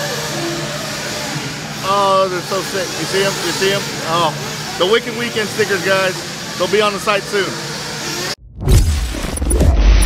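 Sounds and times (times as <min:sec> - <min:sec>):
chatter of voices: 0:00.0 - 0:08.4.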